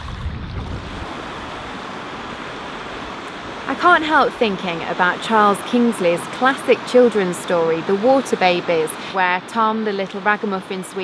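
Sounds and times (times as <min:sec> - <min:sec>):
wind buffeting microphone: 0:00.0 - 0:03.7
river rushing over stones: 0:00.0 - 0:09.6.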